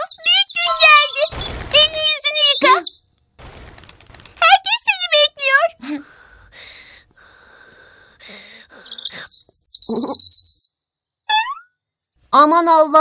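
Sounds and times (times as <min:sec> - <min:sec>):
bird chirps: 0:00.0 - 0:03.4, 0:08.8 - 0:11.8.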